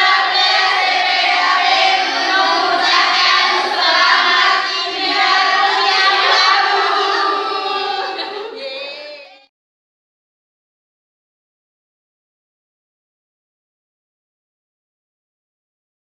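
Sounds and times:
girls singing together: 0.0 - 9.5.

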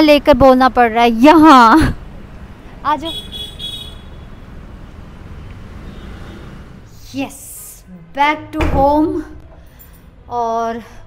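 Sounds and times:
hum of passing vehicles: 0.0 - 11.0.

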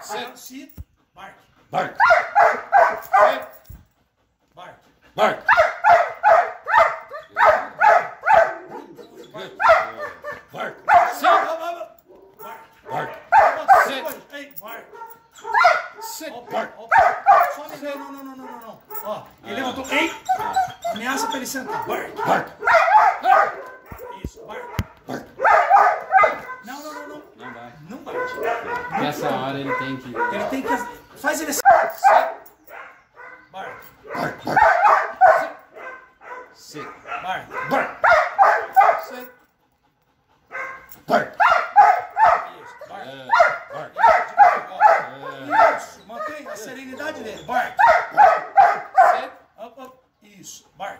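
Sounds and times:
dog barking: 0.0 - 0.4, 1.8 - 3.6, 5.5 - 19.1, 20.3 - 39.4, 40.5 - 49.4.

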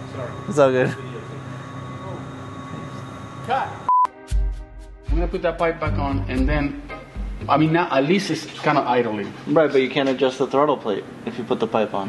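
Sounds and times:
censor bleep: 3.8 - 4.2
music with deep bass: 4.1 - 7.9.

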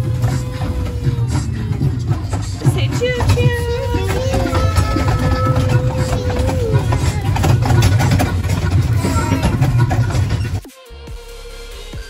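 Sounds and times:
ride-on train rumbling: 0.0 - 10.7.

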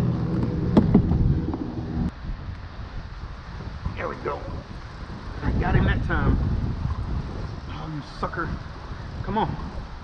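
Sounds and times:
low motor hum: 0.0 - 2.1
wind rumbling on microphone: 0.0 - 10.0.

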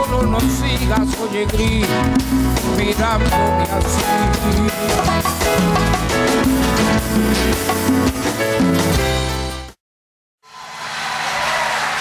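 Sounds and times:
audience applause: 10.5 - 12.0.

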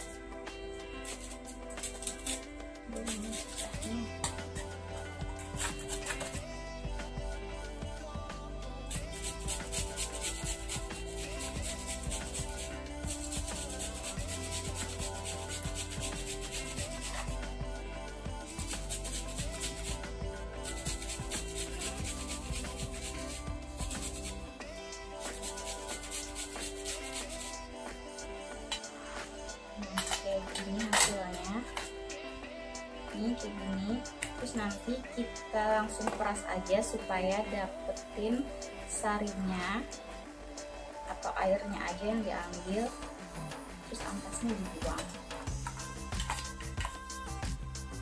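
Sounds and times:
background music: 0.0 - 48.0
cucumber grating on metal grater: 1.1 - 4.4, 9.1 - 17.3, 18.5 - 20.0, 20.6 - 24.4, 25.2 - 27.6.

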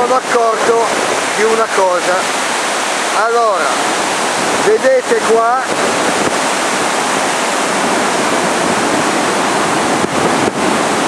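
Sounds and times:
turbulent white water rushing: 0.0 - 11.0.

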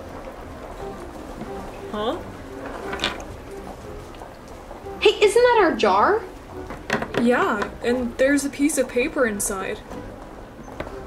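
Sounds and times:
glass jar rolling on floor: 2.6 - 3.4.

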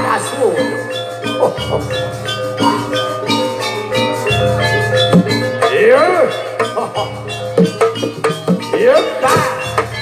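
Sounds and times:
drum beats: 0.0 - 10.0
metallophones ringing notes: 0.0 - 10.0.

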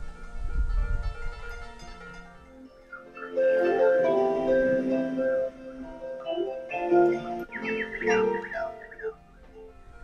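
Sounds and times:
bird whistling: 2.9 - 9.2.

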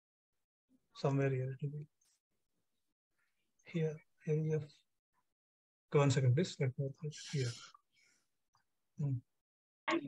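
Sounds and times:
man saying a word: 7.1 - 7.6.

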